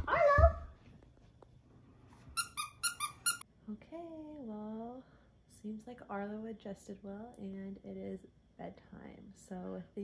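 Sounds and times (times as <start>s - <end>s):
squeaky dog toy squeaks: 2.4s - 3.4s.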